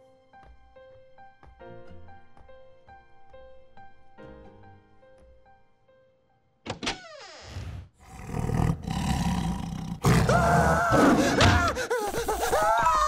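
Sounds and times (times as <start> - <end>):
big cat roar: 8.0 - 11.7
boy screaming: 10.2 - 13.0.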